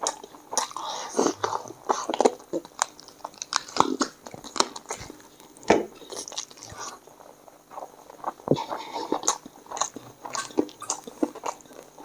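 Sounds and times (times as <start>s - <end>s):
person chewing and biting: 0.0s - 12.0s.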